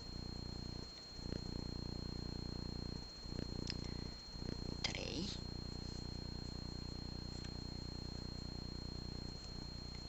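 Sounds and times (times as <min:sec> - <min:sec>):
faint high-pitched whine: 0:00.0 - 0:10.0
cat purring: 0:00.7 - 0:02.2, 0:02.8 - 0:06.0.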